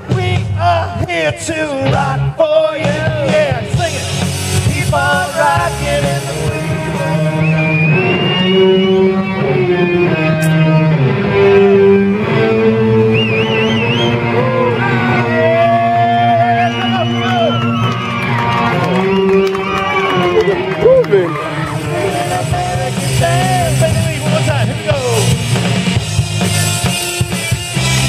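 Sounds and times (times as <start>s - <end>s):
bass line: 0.0s - 28.0s
electric guitar sustained notes: 3.8s - 28.0s.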